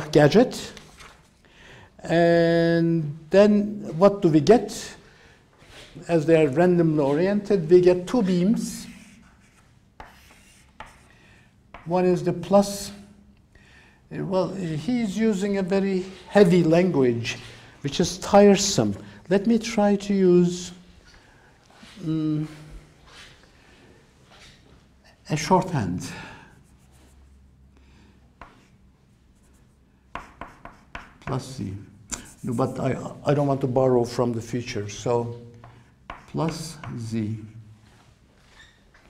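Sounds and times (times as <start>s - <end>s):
chalk scratching on blackboard: 8.5s - 11.9s, 26.5s - 27.4s, 29.4s - 31.6s, 32.2s - 33.1s, 36.1s - 37.1s.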